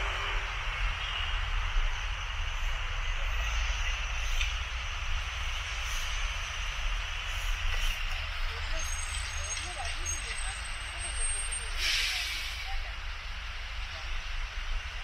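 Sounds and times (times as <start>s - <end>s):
traffic engine rumble and road noise: 0.0s - 15.0s
faint voices of passers-by: 7.5s - 15.0s.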